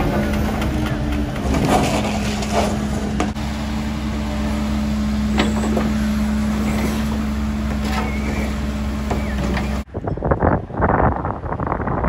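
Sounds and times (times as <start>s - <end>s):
hydraulic hum: 0.0s - 9.9s
excavator diesel drone: 0.0s - 10.7s.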